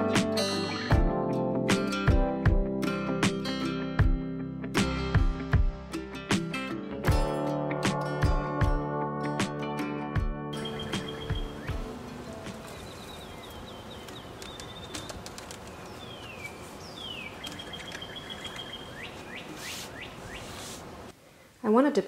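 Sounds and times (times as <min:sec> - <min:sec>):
acoustic guitar music: 0:00.0 - 0:13.6
songbirds chirping and whistling: 0:10.5 - 0:20.8.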